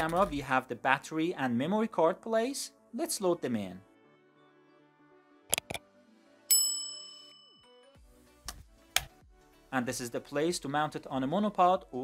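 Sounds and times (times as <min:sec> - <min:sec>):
notification bell ding: 0:06.5 - 0:07.8.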